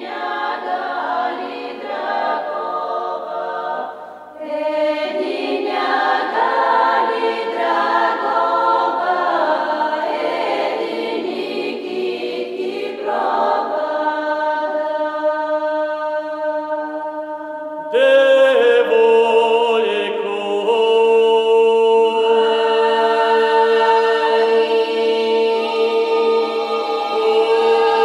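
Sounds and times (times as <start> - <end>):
women's choir singing a cappella: 0.0 - 28.0.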